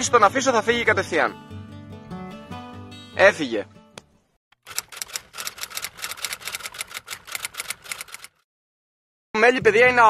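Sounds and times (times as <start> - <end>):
rapid typewriter key clicks: 4.7 - 8.4.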